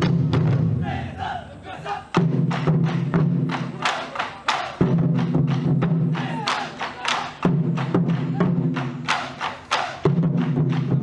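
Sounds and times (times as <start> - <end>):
big drum booming: 0.0 - 1.0
people shouting: 0.7 - 2.2, 3.7 - 4.9, 6.0 - 7.4
sharp wooden clacks: 9.0 - 10.0.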